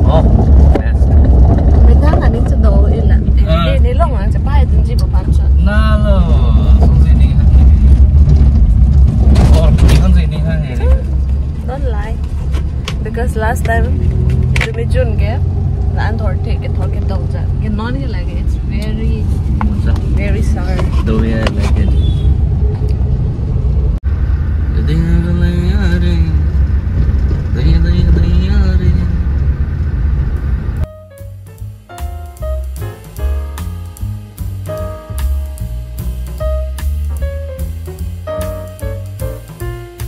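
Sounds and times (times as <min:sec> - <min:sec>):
car driving rumble: 0:00.0 - 0:40.0.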